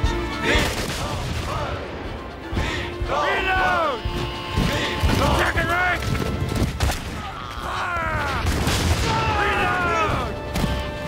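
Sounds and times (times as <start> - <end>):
men shouting and crying out: 2.6 - 6.2, 7.0 - 10.9
booms: 8.2 - 10.8.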